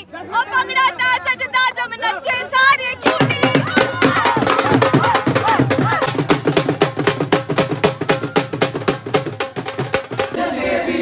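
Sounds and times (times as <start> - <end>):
voices singing and shouting: 0.0 - 7.0, 7.8 - 11.0
dhol drum beaten rapidly: 3.0 - 10.4.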